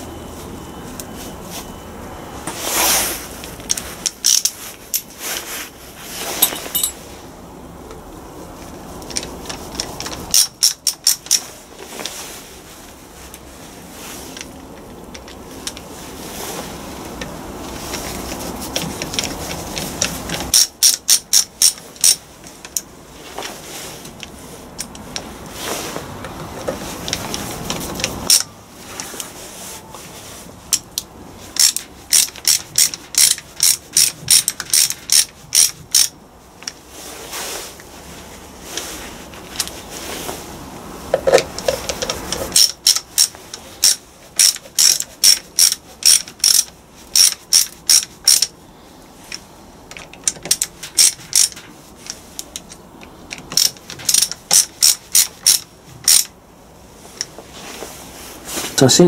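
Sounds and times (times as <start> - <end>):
ratcheting screwdriver clicking: 3.6 - 4.6, 20.5 - 22.2, 31.6 - 36.1, 41.3 - 48.5, 49.9 - 51.6, 53.3 - 56.3.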